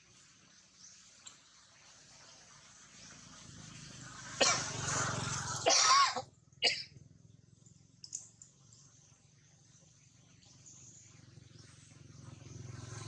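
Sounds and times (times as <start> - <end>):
harsh cough-like bursts: 4.4 - 4.8, 5.6 - 6.9.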